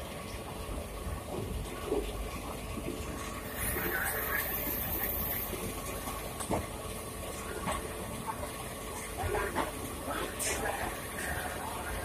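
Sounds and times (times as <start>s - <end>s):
train rumbling: 1.1s - 12.0s.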